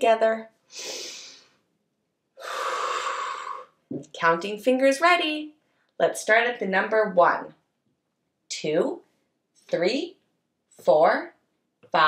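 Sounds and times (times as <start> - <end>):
woman taking deep breath: 0.7 - 1.6.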